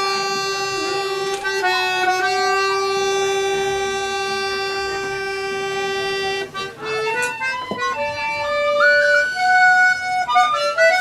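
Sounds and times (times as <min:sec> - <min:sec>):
button accordion: 0:00.0 - 0:11.0
tin whistle: 0:00.0 - 0:11.0.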